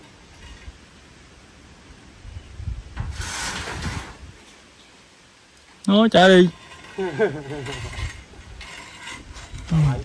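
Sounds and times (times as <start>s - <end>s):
man laughing: 7.0s - 8.0s.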